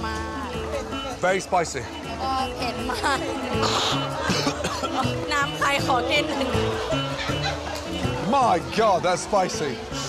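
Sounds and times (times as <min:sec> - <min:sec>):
background music: 0:00.0 - 0:10.0
man coughing: 0:03.6 - 0:05.0.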